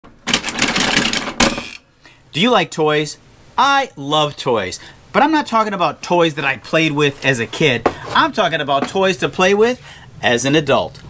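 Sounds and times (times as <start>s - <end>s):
plastic toy clattering: 0.2s - 1.8s.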